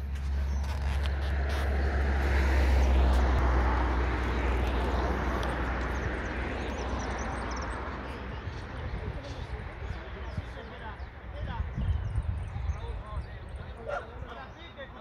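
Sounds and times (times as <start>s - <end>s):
vehicle passing by: 0.0s - 10.3s.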